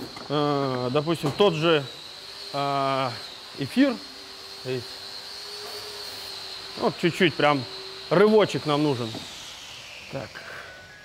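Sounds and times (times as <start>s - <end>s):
high-pitched whine: 0.0s - 11.0s
man talking: 6.8s - 9.2s, 10.1s - 10.5s.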